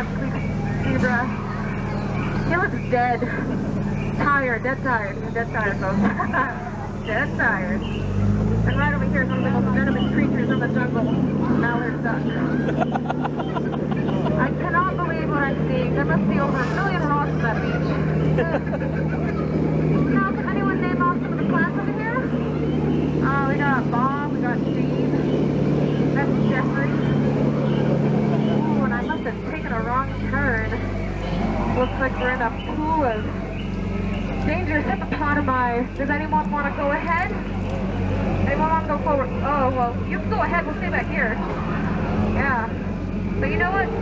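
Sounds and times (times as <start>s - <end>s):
boat motor humming: 0.0s - 44.0s
people's voices: 0.0s - 44.0s.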